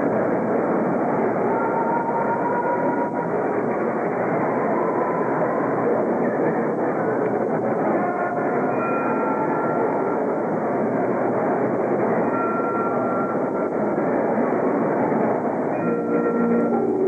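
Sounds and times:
muffled crowd noise: 0:00.0 - 0:17.0
faint held notes: 0:07.1 - 0:17.0.

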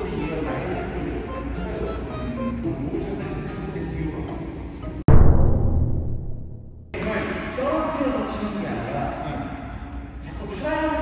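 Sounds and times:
person talking in echoing hall: 0:07.0 - 0:11.0.

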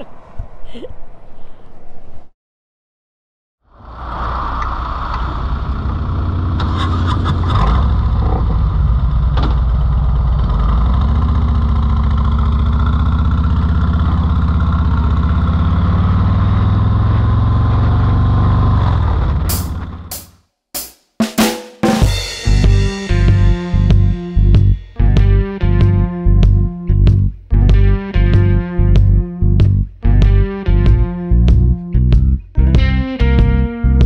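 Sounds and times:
motorcycle engine idling and revving: 0:03.7 - 0:20.4, 0:22.0 - 0:32.3.

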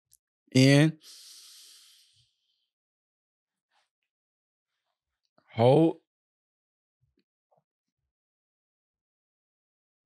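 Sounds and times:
breath in through nose: 0:01.0 - 0:02.3.

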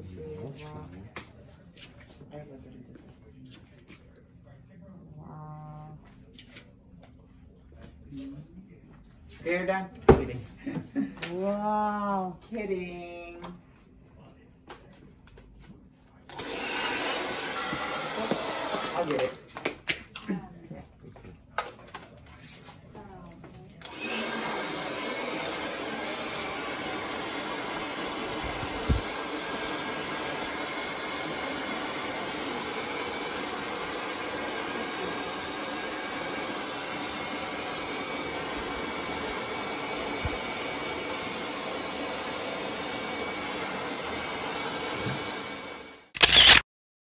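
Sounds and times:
hair dryer running: 0:16.2 - 0:19.4, 0:23.8 - 0:46.6.

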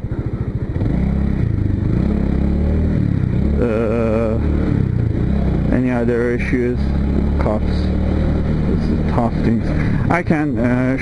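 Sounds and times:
motorcycle engine cruising: 0:00.0 - 0:11.0.

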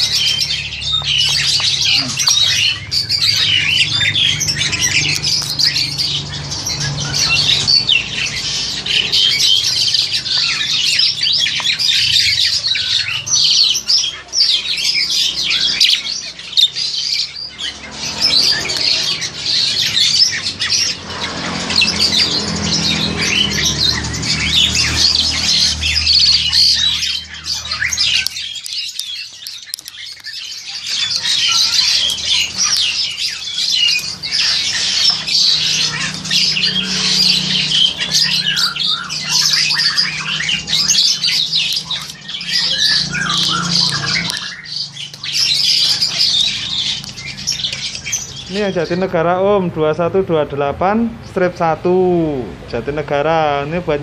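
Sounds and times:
starlings calling: 0:00.0 - 0:54.0.

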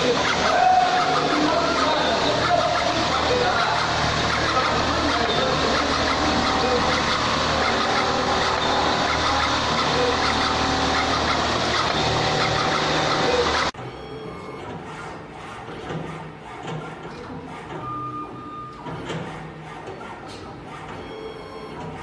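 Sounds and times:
cable cutting machine running: 0:00.0 - 0:13.9
quieter machine running: 0:00.0 - 0:20.9.

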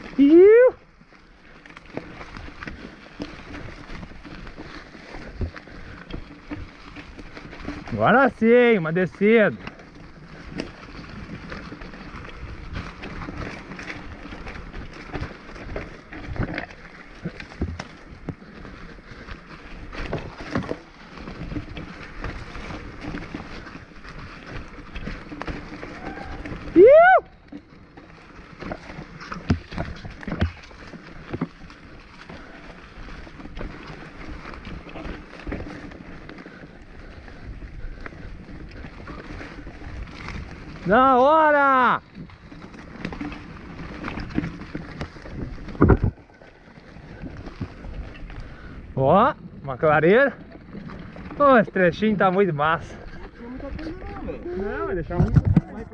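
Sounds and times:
bike tyres rolling on dirt: 0:00.0 - 0:55.9
rider whooping: 0:00.1 - 0:00.8, 0:25.7 - 0:27.5
bike knocks and rattles: 0:01.5 - 0:26.8, 0:27.4 - 0:36.6.

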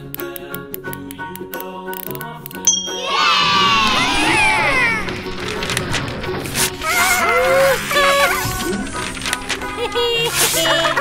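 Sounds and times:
children cheering and shouting: 0:02.9 - 0:05.5, 0:06.8 - 0:11.0.

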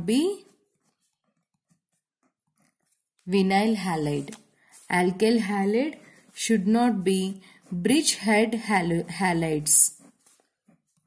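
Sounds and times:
pen writing on paper: 0:00.0 - 0:11.0.

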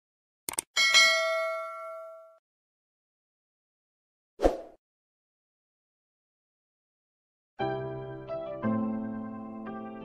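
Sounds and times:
bright bell ding: 0:00.8 - 0:02.4.

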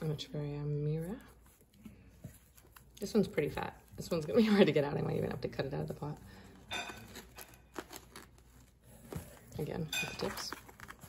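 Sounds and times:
plastic pot crinkling: 0:02.3 - 0:11.0.

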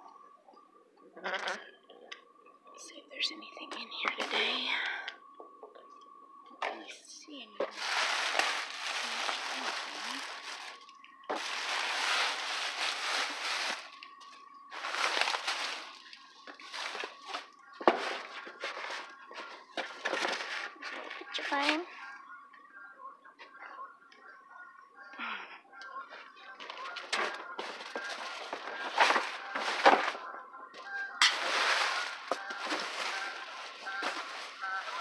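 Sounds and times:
plastic bags crinkling: 0:07.7 - 0:17.5, 0:31.3 - 0:35.0.

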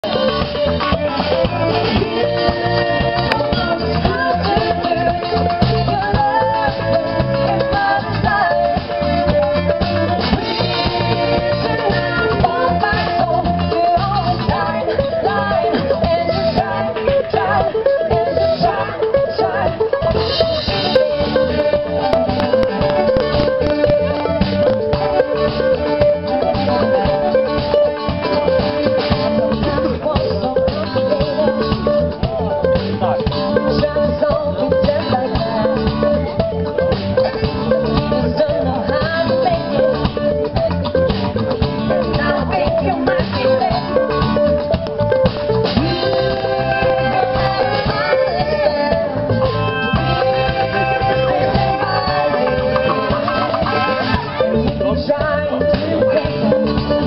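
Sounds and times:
drum kit: 0:00.0 - 0:57.0
electric guitars: 0:00.0 - 0:57.0.

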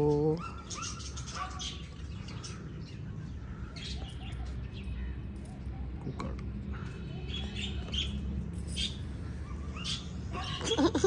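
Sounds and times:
small birds chirping: 0:00.0 - 0:10.9.

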